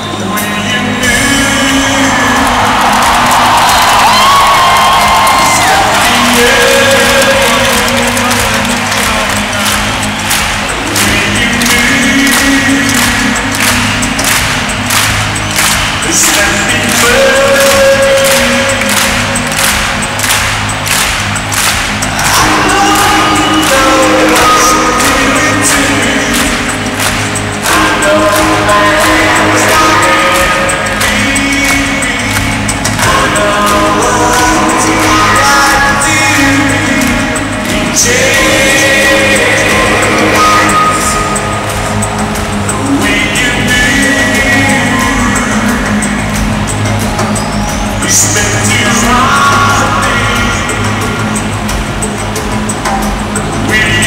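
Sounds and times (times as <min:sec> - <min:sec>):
live band over sound system: 0:00.0 - 0:54.0.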